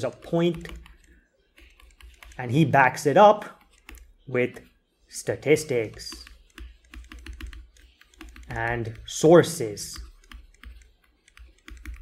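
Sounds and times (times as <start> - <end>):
computer input device clicks: 0.2 - 2.4, 5.9 - 9.0, 10.0 - 12.0.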